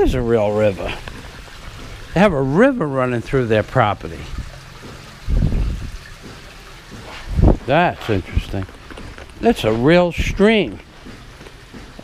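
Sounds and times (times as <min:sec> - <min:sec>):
stream trickling over rocks: 0:00.0 - 0:12.0.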